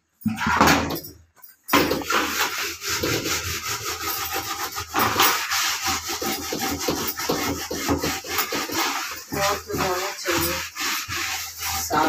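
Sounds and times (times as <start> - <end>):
scrubbing plastic bucket: 1.8 - 12.0.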